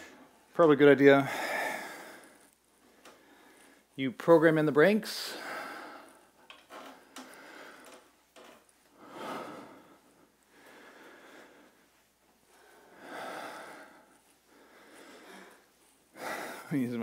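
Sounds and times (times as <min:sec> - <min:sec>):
person breathing heavily: 0:01.1 - 0:04.0, 0:05.1 - 0:16.8.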